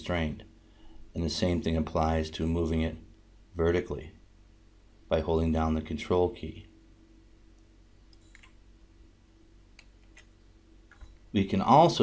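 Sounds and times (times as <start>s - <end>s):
low room hum: 0.0s - 12.0s
computer mouse clicks: 8.1s - 8.6s.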